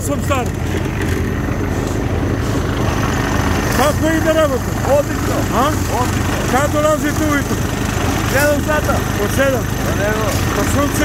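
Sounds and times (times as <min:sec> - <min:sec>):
engine rumbling: 0:00.0 - 0:11.0
person speaking: 0:03.5 - 0:11.0.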